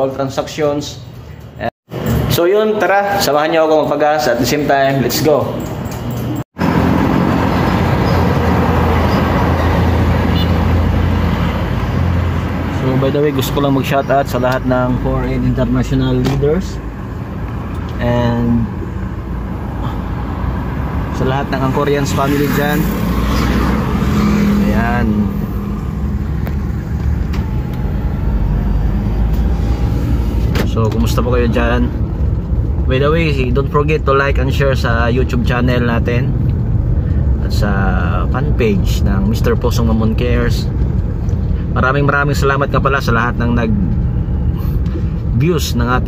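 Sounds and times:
car engine and road hum: 5.6s - 46.0s.

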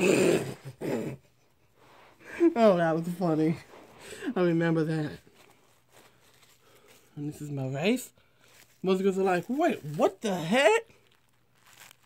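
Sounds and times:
person laughing: 0.0s - 1.6s
plastic wrap crinkling: 4.7s - 12.0s.

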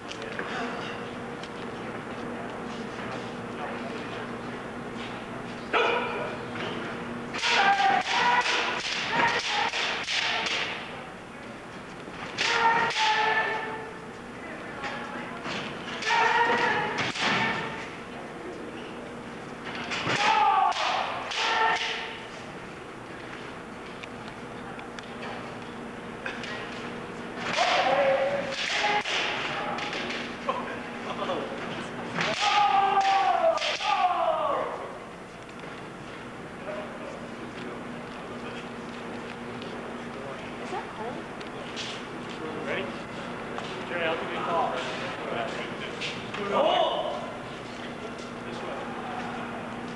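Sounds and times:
fighters shouting: 5.7s - 6.4s, 7.3s - 10.9s, 12.2s - 14.1s, 15.9s - 17.9s, 19.9s - 22.3s, 27.4s - 30.1s, 32.2s - 35.0s
bamboo swords clacking: 7.3s - 10.9s, 27.4s - 30.2s, 32.2s - 34.2s.

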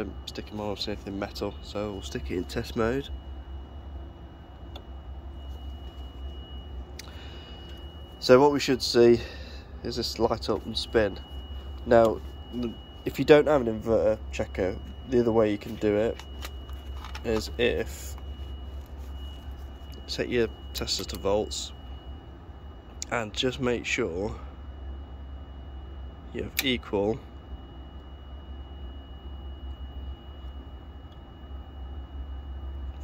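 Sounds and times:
steady low hum: 0.0s - 33.0s
thin high whine: 0.0s - 33.0s.

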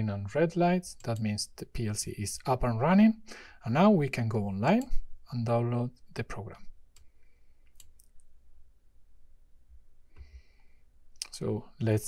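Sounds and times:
computer mouse clicks: 6.9s - 8.3s
soft breath: 10.1s - 11.0s.

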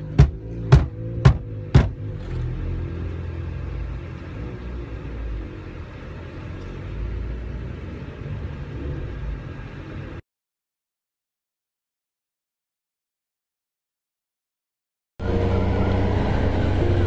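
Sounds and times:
car rumbling from inside cabin: 0.0s - 10.2s, 15.2s - 17.0s.

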